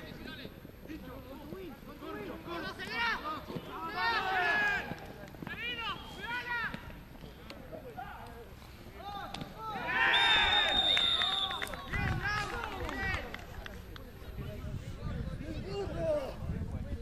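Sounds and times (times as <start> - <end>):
players and spectators shouting: 2.2 - 6.8, 9.0 - 11.0
referee's whistle long blast: 10.0 - 11.6.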